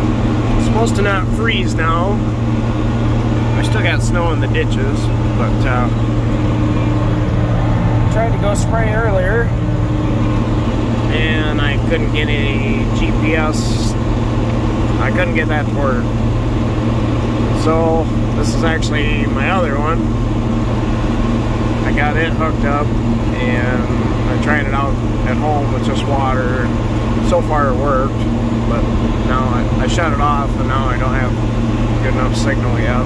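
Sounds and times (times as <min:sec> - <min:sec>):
steady hum: 0:00.0 - 0:33.0
tractor diesel engine droning: 0:00.0 - 0:33.0.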